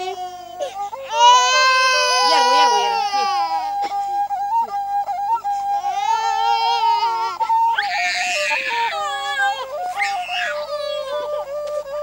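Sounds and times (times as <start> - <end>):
baby crying: 0.0 - 4.0, 5.8 - 11.4.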